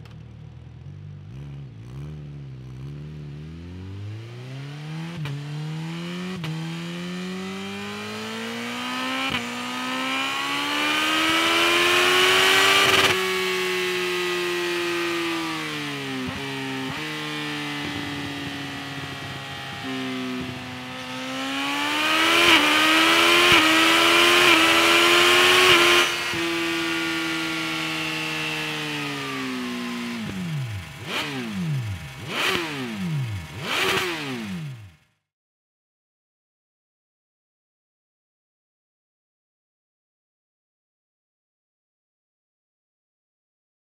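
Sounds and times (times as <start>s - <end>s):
motorcycle engine revving: 0.0s - 35.3s.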